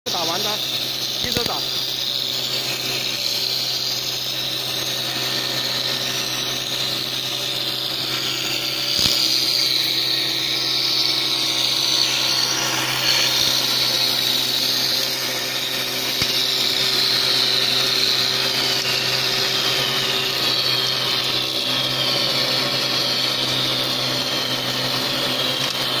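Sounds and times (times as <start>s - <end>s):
high wavering whine: 0.1s - 26.0s
machine motor hum: 0.1s - 26.0s.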